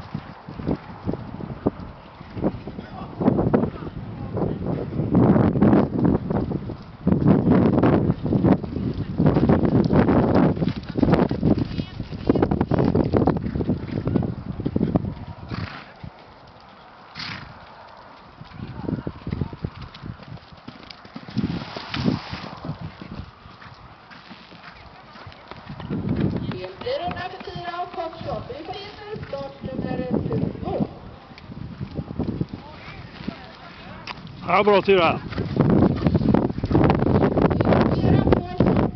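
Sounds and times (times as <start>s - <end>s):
horse hoofbeats on sand: 5.2s - 38.9s
people's voices: 26.3s - 35.4s, 37.8s - 38.9s.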